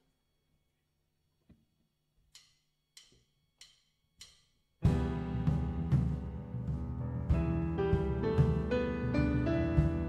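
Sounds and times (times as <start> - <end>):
drumstick count-in clicks: 2.3 - 4.6.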